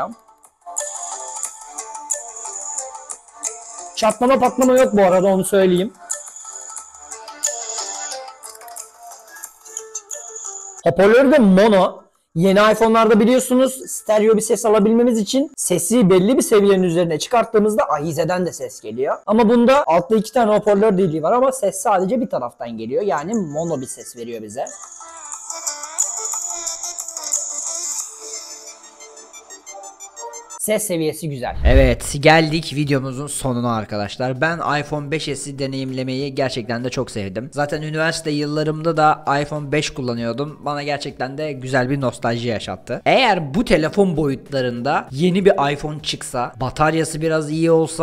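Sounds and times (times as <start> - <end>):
music through thin phone loudspeaker: 0.0 - 15.5, 22.8 - 31.0.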